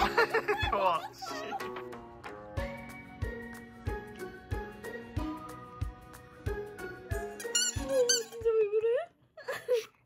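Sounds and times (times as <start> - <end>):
bouncy background music: 0.0 - 9.1
rubber ball toy squeaking: 7.2 - 8.5.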